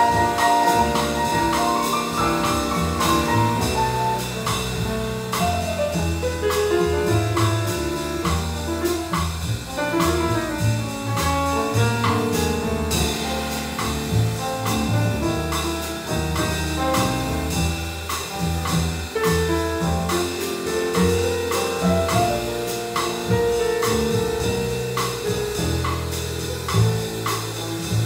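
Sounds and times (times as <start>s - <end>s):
drum kit cymbal strokes: 0.0s - 7.5s, 8.1s - 28.0s
grand piano: 0.0s - 28.0s
plucked double bass: 0.0s - 28.0s.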